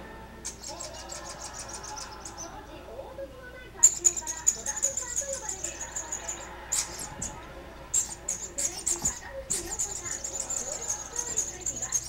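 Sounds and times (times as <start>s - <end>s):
squeaky toy squeaks: 0.4s - 2.6s, 3.8s - 12.0s.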